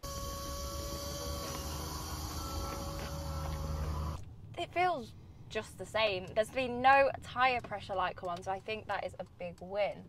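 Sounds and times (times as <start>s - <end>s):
electric car motor hum: 0.0s - 4.2s.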